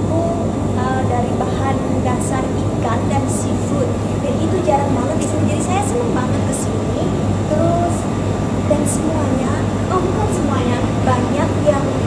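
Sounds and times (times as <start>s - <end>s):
freezers humming: 0.0s - 12.0s.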